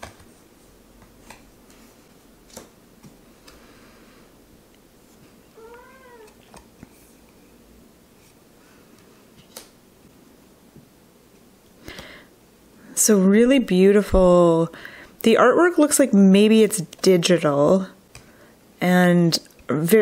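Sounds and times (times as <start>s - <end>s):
cat meowing softly: 5.5s - 6.4s.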